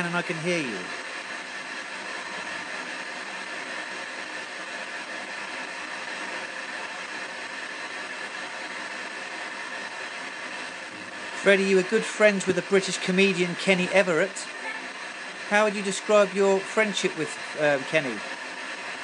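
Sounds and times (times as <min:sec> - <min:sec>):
radio static hiss: 0:00.0 - 0:07.4, 0:08.4 - 0:19.0.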